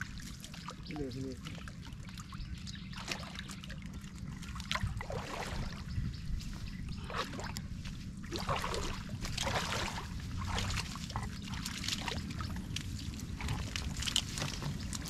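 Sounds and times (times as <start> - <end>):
person wading through water: 0.0 - 15.0
pond water splashing: 0.0 - 15.0.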